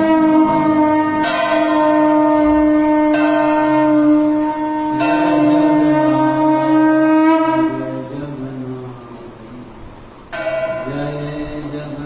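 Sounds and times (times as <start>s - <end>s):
bells ringing: 0.0s - 6.9s, 10.3s - 12.0s
steady held tone: 0.0s - 12.0s.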